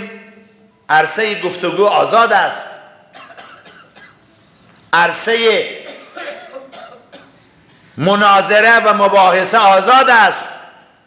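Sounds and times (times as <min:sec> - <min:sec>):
speech: 0:00.0 - 0:02.9, 0:04.9 - 0:05.8, 0:08.0 - 0:10.8
person coughing: 0:03.1 - 0:04.2, 0:05.8 - 0:07.4.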